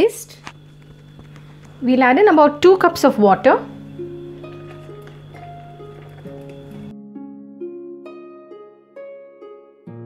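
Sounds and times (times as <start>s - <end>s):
instrumental background music: 0.7s - 10.0s.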